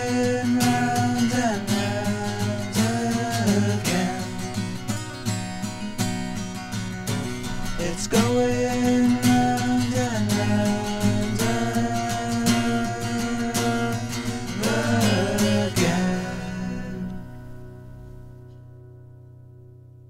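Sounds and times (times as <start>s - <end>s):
person singing: 0.0s - 4.7s, 7.6s - 17.5s
strummed guitar: 0.0s - 20.0s.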